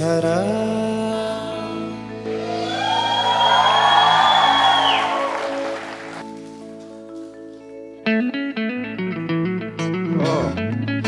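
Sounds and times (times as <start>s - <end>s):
synth chords: 1.5s - 6.3s
noisy swell: 2.2s - 6.2s.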